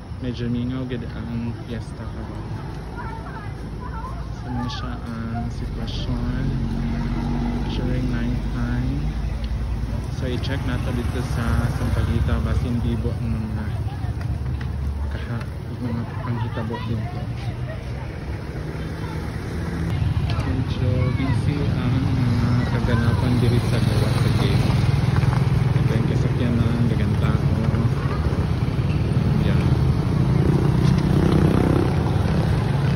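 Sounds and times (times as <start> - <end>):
people's voices: 0.0 - 32.9
vehicle engine humming: 0.0 - 32.9.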